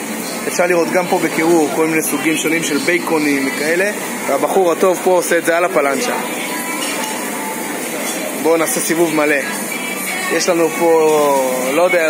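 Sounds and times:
restaurant din: 0.0s - 12.0s
dishes and cutlery clinking: 6.6s - 9.0s.

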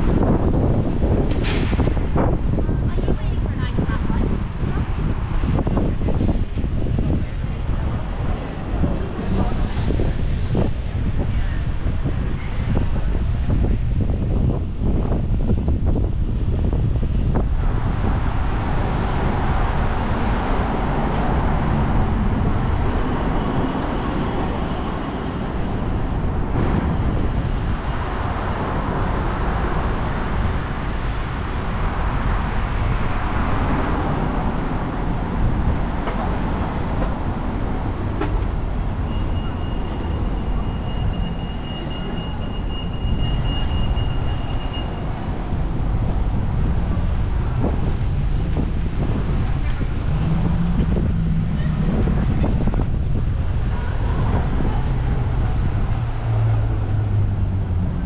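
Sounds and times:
road traffic rumble: 0.0s - 58.0s.

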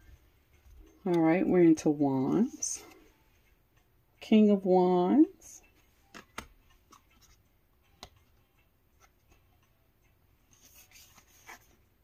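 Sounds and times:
cards tapping: 6.1s - 7.0s
cards rustling: 10.5s - 11.8s.

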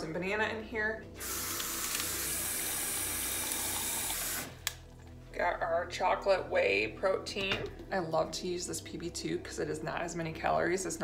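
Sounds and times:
faucet running water into cup: 1.2s - 4.5s.

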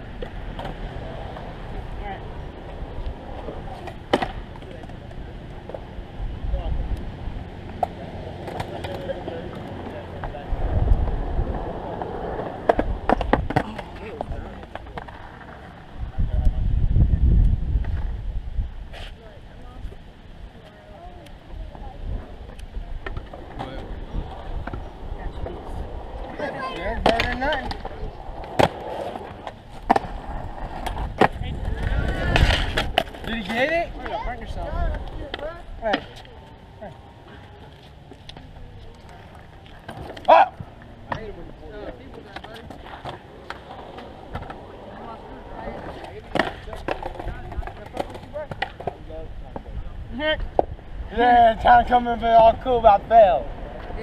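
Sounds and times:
skateboards clacking on ground: 0.0s - 6.0s, 7.4s - 16.5s, 20.6s - 54.0s
skateboard wheels rolling on concrete: 0.0s - 54.0s.

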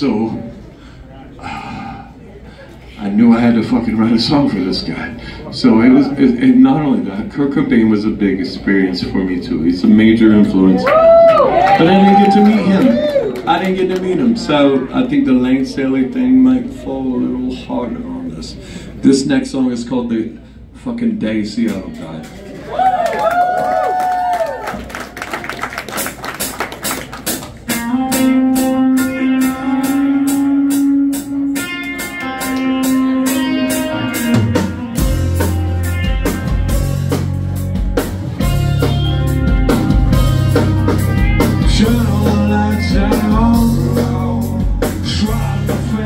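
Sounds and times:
live rock band playing: 25.8s - 46.0s
sustained guitar notes: 27.7s - 46.0s
steady drum beat: 32.2s - 46.0s.

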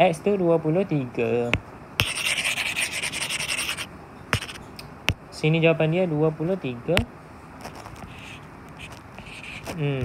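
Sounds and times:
stylus scrubbing on glass screen: 2.0s - 4.6s, 7.7s - 9.8s.

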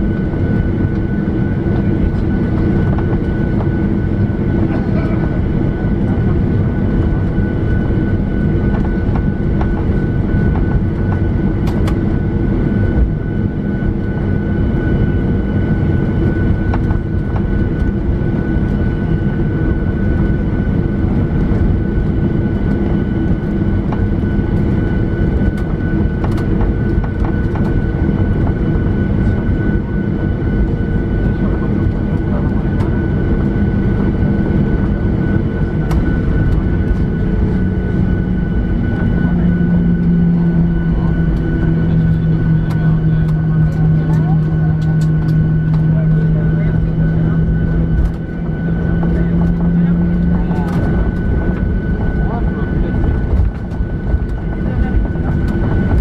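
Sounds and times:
jet engine and airflow drone: 0.0s - 56.0s.

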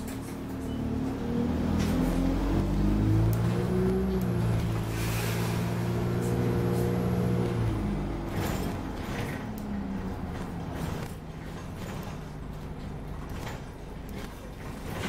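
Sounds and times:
bus diesel engine accelerating: 0.0s - 15.0s.

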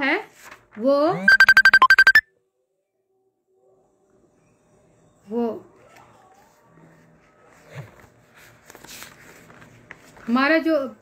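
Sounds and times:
short electronic beeps: 1.2s - 2.2s.

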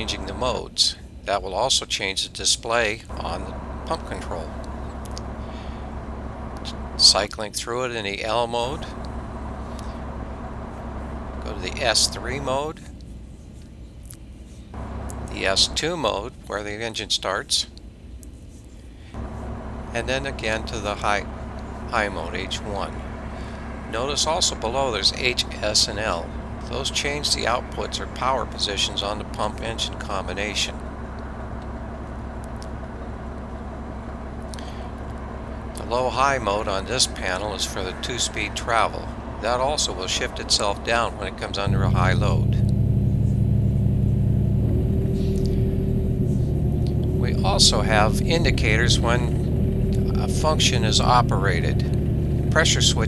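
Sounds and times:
excavator diesel engine running: 0.0s - 0.7s, 3.1s - 13.1s, 14.7s - 16.8s, 19.0s - 53.0s
steady higher hum: 0.0s - 1.6s, 2.3s - 53.0s.

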